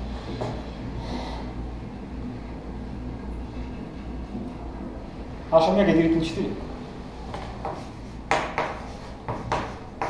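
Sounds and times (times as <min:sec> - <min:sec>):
low hum: 0:00.0 - 0:05.5.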